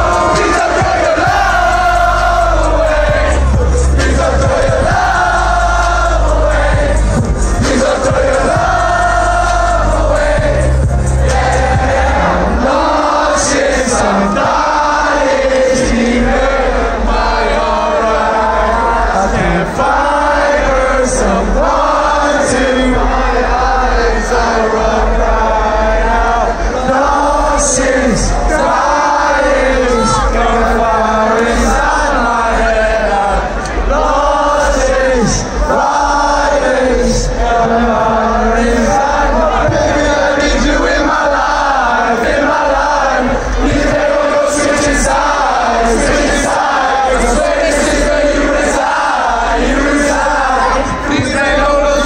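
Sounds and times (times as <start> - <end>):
crowd singing along: 0.0 - 52.0
hip-hop music over sound system: 0.0 - 52.0.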